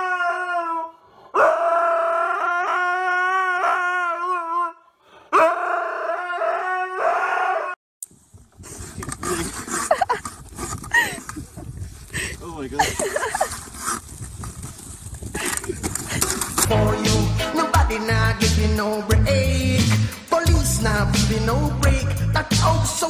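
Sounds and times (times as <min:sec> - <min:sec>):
husky howling: 0:00.0 - 0:07.8.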